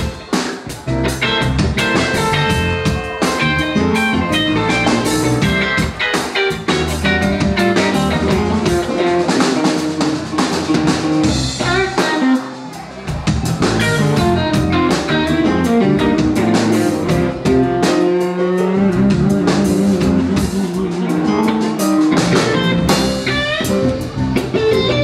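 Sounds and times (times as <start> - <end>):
drum kit: 0.0 - 25.0
electric guitar: 0.0 - 25.0
keyboard: 0.0 - 25.0.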